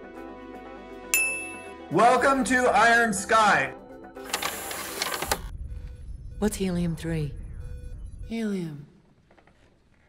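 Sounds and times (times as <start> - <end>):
low rumble: 5.5 - 9.0.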